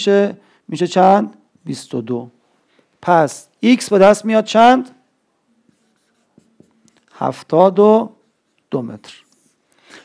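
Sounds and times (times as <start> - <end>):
marker writing on whiteboard: 5.5 - 9.7.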